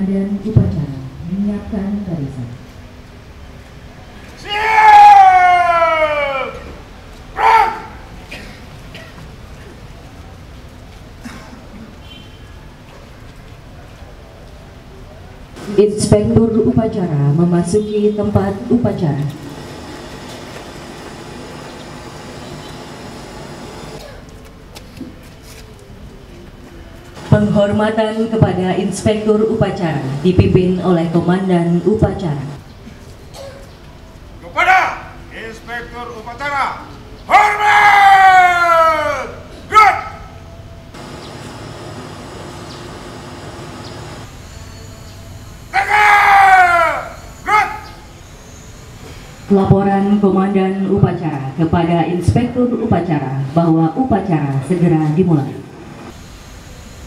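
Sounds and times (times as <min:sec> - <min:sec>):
outdoor background noise: 0:00.0 - 0:57.0
person shouting drill commands: 0:07.4 - 0:08.0, 0:34.5 - 0:35.2, 0:36.3 - 0:40.3, 0:45.7 - 0:48.1.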